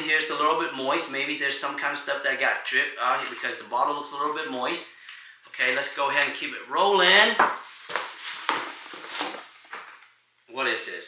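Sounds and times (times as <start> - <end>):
plastic packaging rustling and crinkling: 7.4 - 10.2.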